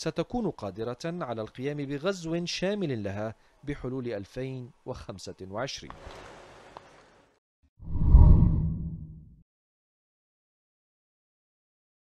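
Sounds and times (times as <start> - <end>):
deep whoosh with low boom: 7.8 - 9.3.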